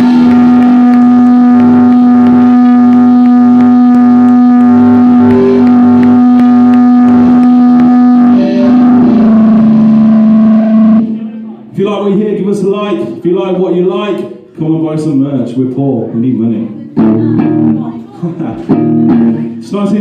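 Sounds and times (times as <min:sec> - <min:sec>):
distorted rock band note droning: 0:00.0 - 0:11.7, 0:17.0 - 0:17.9, 0:18.7 - 0:19.4.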